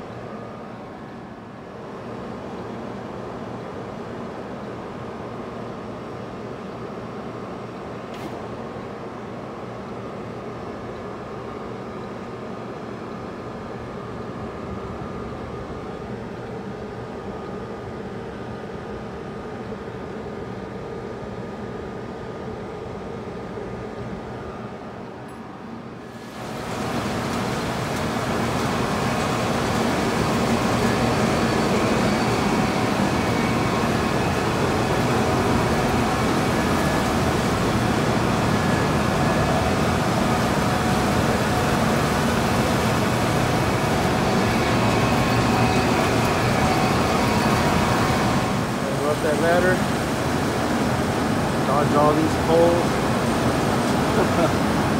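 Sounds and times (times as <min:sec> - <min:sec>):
conveyors and machinery rumbling: 0:00.0 - 0:54.9
refrigeration unit humming: 0:00.0 - 0:54.9.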